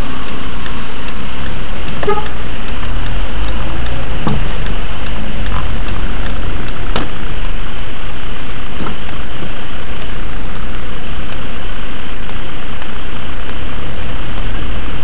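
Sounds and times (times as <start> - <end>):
car engine: 0.0 - 15.0
road noise inside car: 0.0 - 15.0.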